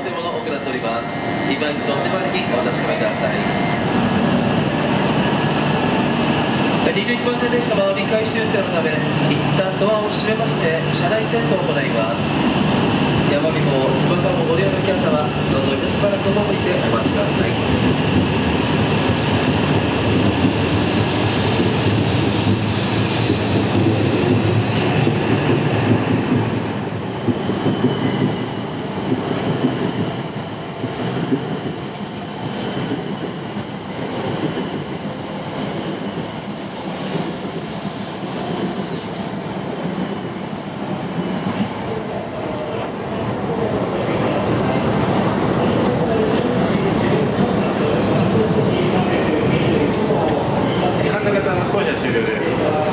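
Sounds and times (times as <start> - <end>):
train wheels rumbling over tracks: 0.0 - 52.9.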